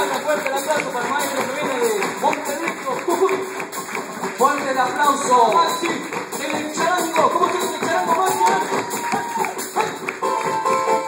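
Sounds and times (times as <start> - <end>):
live folk band music: 0.0 - 11.0
steady tapped beat: 0.0 - 11.0.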